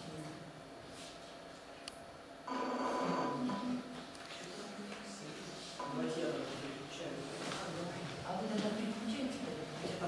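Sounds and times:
high-pitched electronic tone: 2.5 - 3.9.

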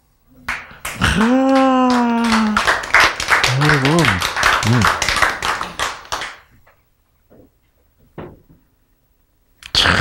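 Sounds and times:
hands clapping: 0.5 - 6.8.

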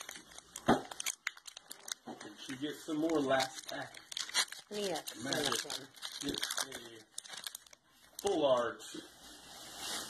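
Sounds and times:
foil wrapper crinkling: 0.0 - 8.9.

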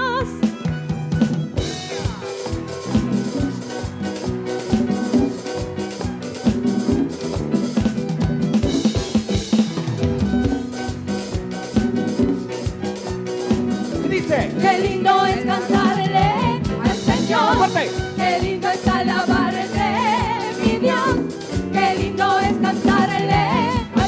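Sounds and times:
drum kit beat: 0.1 - 24.0
worship band playing: 0.1 - 24.0.

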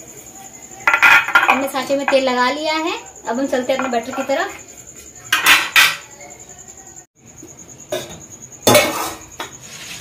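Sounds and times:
steel kitchenware clattering on stone: 0.8 - 2.3, 3.7 - 4.6, 5.2 - 6.1, 7.9 - 9.5.

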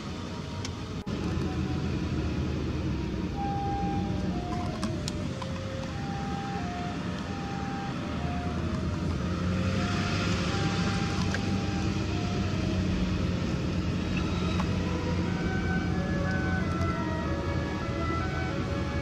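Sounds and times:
car engine and road hum: 0.0 - 19.0.

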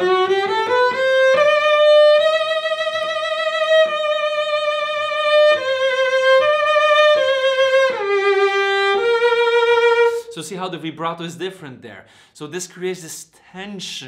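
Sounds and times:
bowed cello melody: 0.0 - 10.3.

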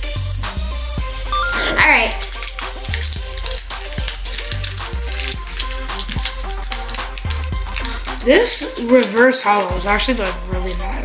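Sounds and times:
music with beat and bass line: 1.3 - 2.1.

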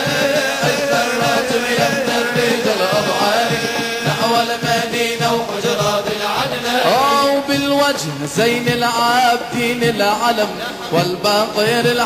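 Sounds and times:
men singing devotional chant: 0.0 - 12.0.

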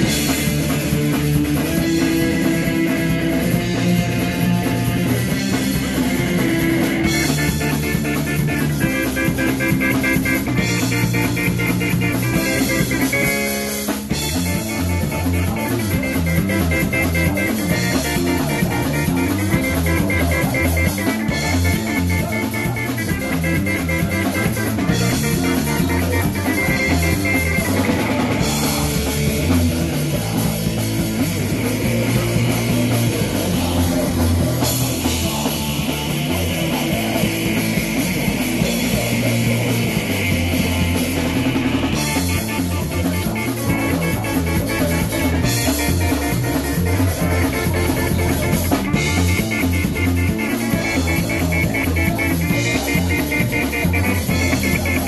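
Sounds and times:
drum kit: 0.0 - 55.0
electric guitar: 0.0 - 55.0.

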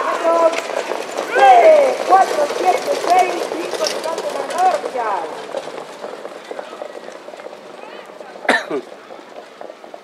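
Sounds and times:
open-air noise: 0.0 - 10.0.

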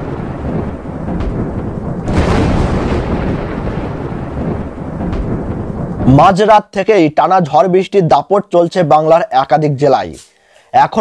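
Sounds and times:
deep rumble: 0.0 - 6.4
wind and rain rushing: 0.0 - 9.6.

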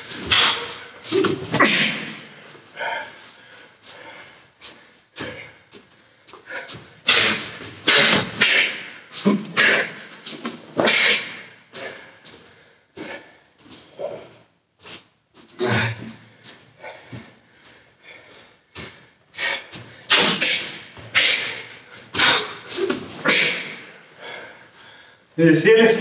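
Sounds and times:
man breathing hard: 0.0 - 25.4.

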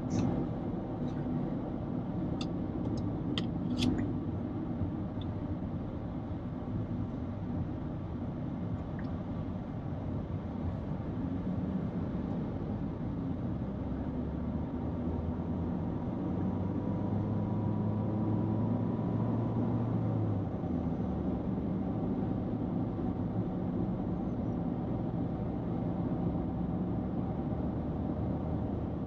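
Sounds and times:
car road and engine noise: 0.0 - 29.0.

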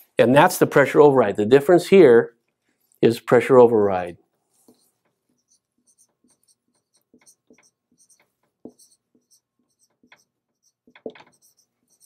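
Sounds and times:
marker squeaking on whiteboard: 4.6 - 12.0.

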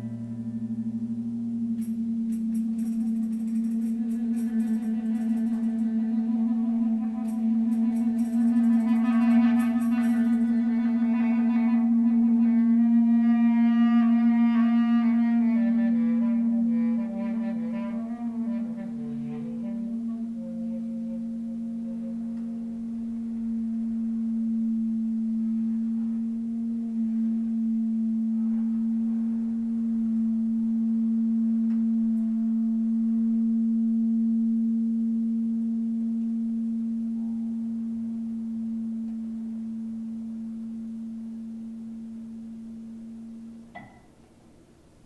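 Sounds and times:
electric guitar low note: 0.0 - 44.0.

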